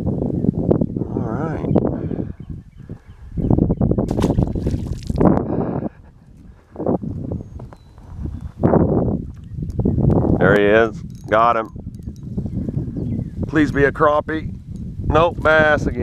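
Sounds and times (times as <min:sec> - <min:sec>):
wind on microphone: 0:00.0 - 0:16.0
camera handling rumble: 0:09.2 - 0:12.8.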